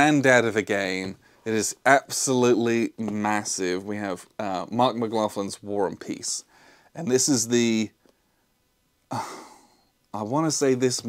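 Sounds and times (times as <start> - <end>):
man sighing: 9.1 - 9.9.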